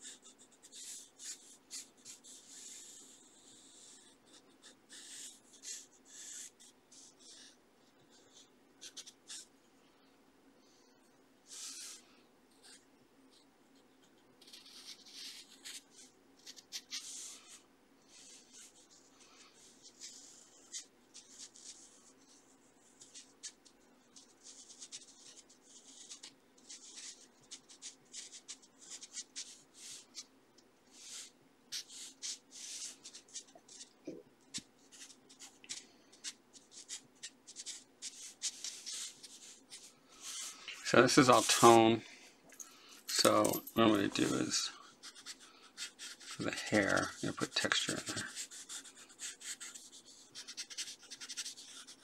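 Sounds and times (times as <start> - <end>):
pencil scratching on paper: 0.0 - 9.5, 11.5 - 12.0, 12.6 - 30.3, 30.9 - 41.9, 43.2 - 52.0.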